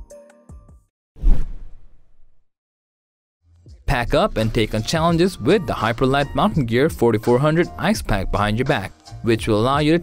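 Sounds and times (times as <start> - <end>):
whoosh sound effect: 1.2 - 2.4.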